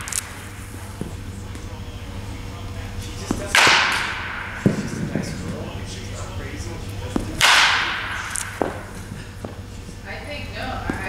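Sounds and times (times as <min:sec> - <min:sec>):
bat cracking ball: 0:03.1 - 0:06.0, 0:07.0 - 0:09.7.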